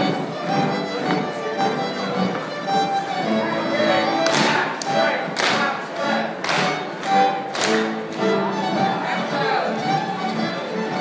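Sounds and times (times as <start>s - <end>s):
folk dance band with fiddle: 0.0s - 11.0s
loud hand claps: 4.2s - 8.2s.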